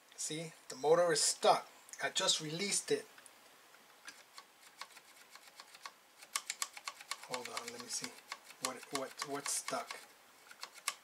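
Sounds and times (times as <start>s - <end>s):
fingers clicking disk drive mechanism: 4.8s - 11.0s.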